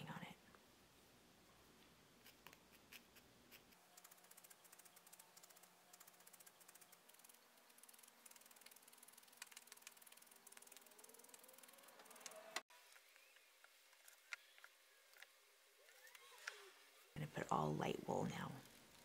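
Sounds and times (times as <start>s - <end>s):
rapid ticking of felting needles: 2.2s - 14.4s.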